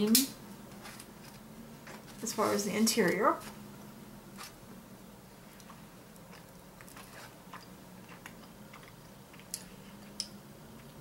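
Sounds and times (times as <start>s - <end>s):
chewing chocolate: 5.6s - 9.7s.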